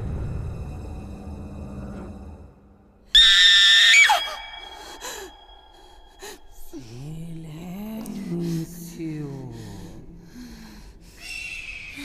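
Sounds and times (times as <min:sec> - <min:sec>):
woman screaming: 0:03.2 - 0:05.8.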